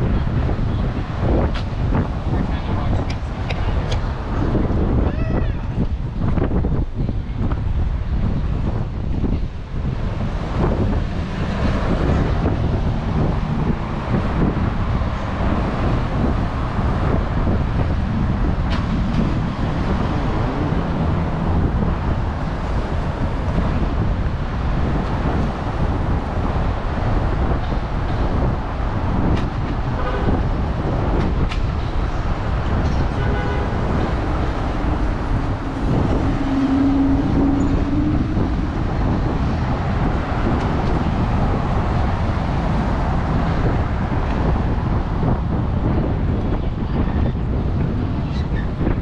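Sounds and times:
street traffic engines and tyres: 0:00.0 - 0:49.0.

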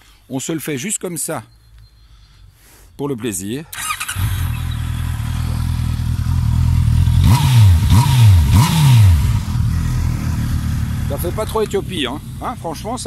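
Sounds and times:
motorcycle engine idling and revving: 0:03.8 - 0:13.0.

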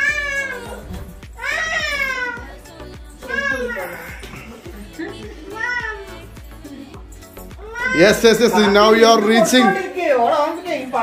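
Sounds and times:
cat meowing: 0:00.0 - 0:02.5, 0:07.6 - 0:08.2
background music: 0:00.0 - 0:11.0.

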